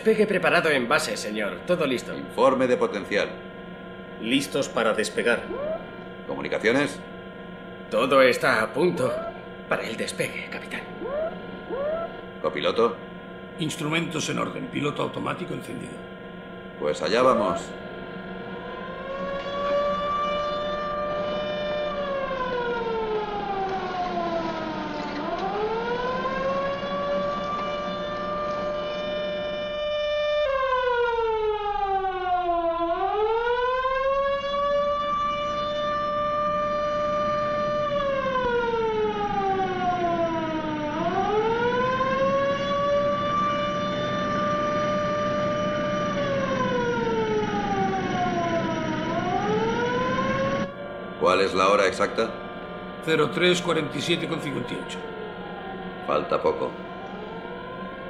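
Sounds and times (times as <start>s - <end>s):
warning siren wailing: 0.0s - 58.0s.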